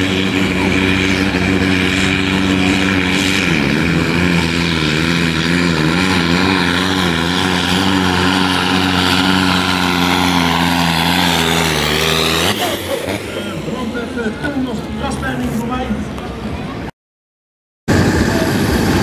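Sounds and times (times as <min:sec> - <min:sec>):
tractor diesel engine at full power: 0:00.0 - 0:16.8, 0:17.9 - 0:19.0.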